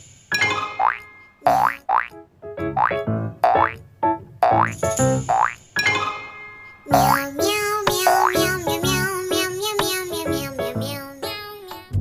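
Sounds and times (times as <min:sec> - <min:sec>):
bouncy cartoon music: 0:00.3 - 0:12.0
boing-like pitch slides: 0:00.5 - 0:02.2, 0:04.4 - 0:06.0, 0:06.9 - 0:07.3.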